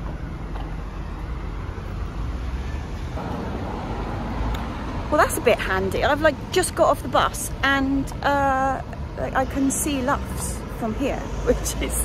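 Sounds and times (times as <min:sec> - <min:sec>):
passing vehicles rumbling: 0:00.0 - 0:12.0.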